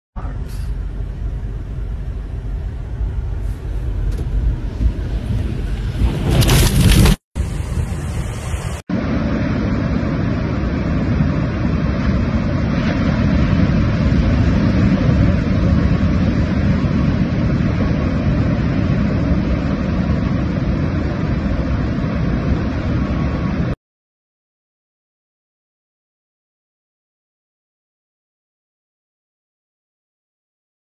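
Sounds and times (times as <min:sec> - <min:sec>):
surf and wind rushing: 0:03.4 - 0:23.8.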